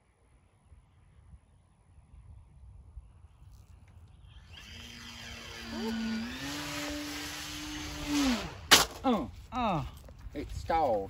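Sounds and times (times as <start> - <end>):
model plane motor whining: 3.4 - 8.7.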